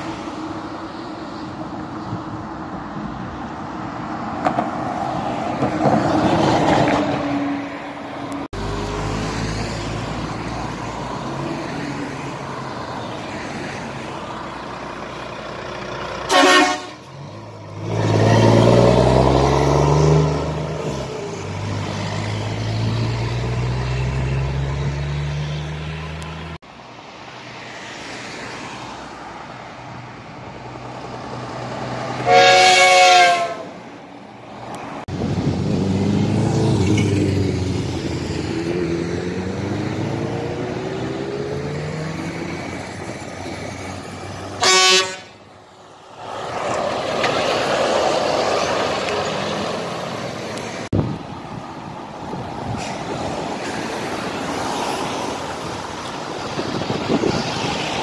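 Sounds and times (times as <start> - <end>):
heavy trucks passing: 0.0 - 58.0
truck horn blasts: 16.2 - 17.3, 32.2 - 33.8, 44.6 - 45.4
truck engine pulling away: 17.0 - 26.6, 35.1 - 44.5, 45.8 - 51.5.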